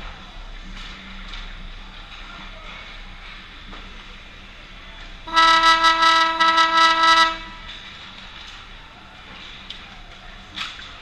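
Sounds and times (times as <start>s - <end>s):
loud horn blast: 5.3s - 7.7s.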